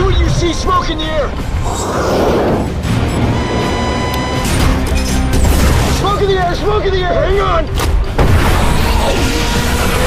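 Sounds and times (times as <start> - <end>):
action film music: 0.0 - 10.0.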